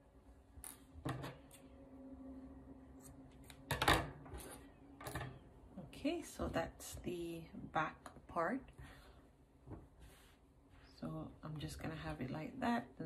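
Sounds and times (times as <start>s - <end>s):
soft rustles of yarn handling: 8.4s - 12.2s.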